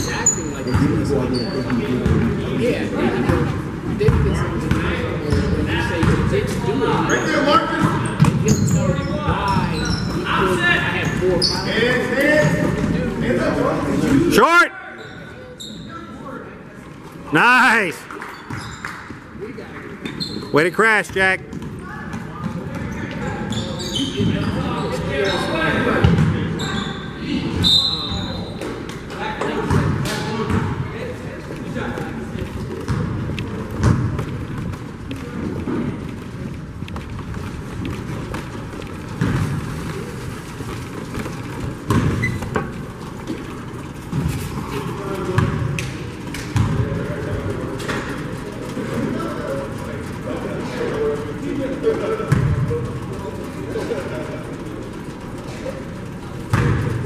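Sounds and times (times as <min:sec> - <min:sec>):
voices of players and spectators: 0:00.0 - 0:57.0
basketball bouncing on wooden floor: 0:04.0 - 0:06.3, 0:33.8 - 0:34.8, 0:41.9 - 0:42.7, 0:46.6 - 0:46.8.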